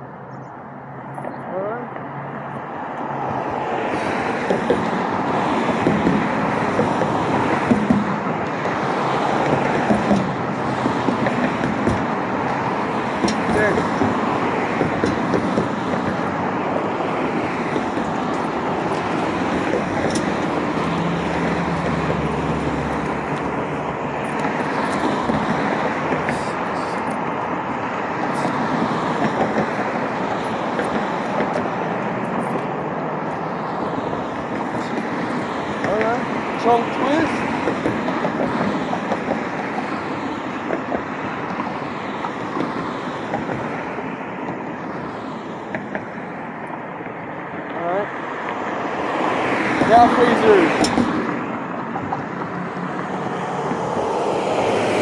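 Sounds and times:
cars passing on street: 0.0 - 55.0.

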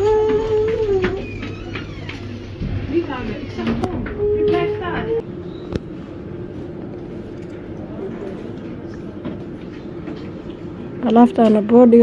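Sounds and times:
shop background hum: 0.0 - 12.0.

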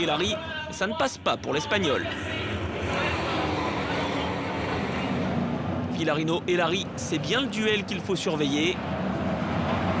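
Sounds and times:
race cars droning past: 2.1 - 6.0.

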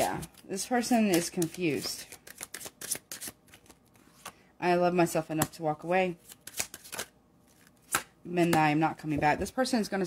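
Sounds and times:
cards shuffling: 0.0 - 4.4, 6.2 - 8.1.

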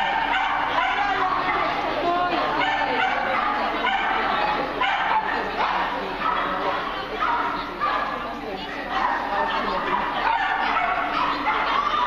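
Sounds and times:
dogs barking and yipping: 0.0 - 12.0
people's voices: 0.0 - 12.0.

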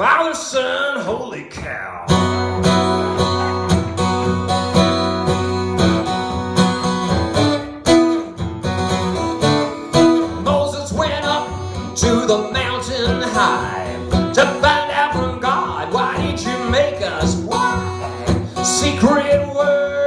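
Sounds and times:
acoustic guitar strumming: 2.0 - 20.0.

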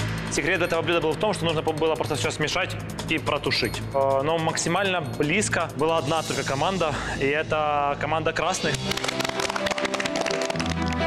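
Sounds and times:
music with deep bass: 0.0 - 11.0
children clapping: 8.7 - 11.0.

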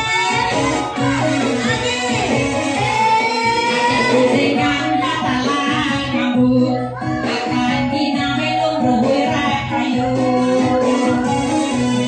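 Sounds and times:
instrumental backing with bass line: 0.0 - 12.0
woman singing: 0.0 - 12.0.

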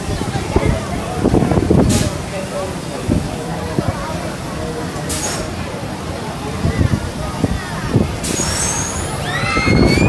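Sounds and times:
pneumatic air hiss: 5.1 - 5.5, 8.2 - 9.2.

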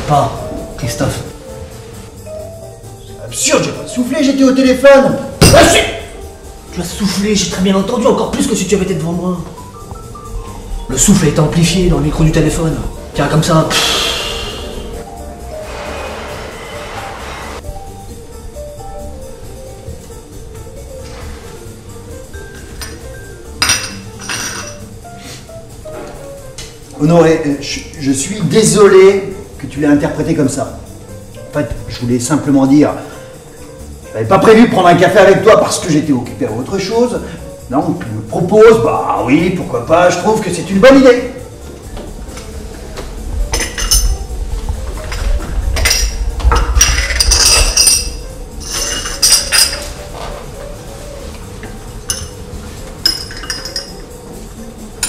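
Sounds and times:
soft background music: 0.0 - 55.0
coffee cup and spoon clinking: 23.6 - 24.8, 43.6 - 44.2, 45.8 - 49.9, 52.1 - 52.3, 53.0 - 54.0.

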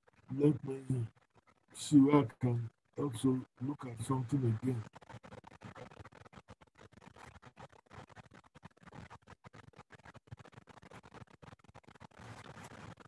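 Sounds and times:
scratchy rustling with small clicks: 0.0 - 13.0.

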